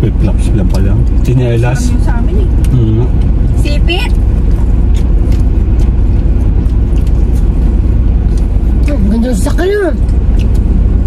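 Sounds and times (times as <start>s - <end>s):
car engine and road rumble: 0.0s - 11.0s.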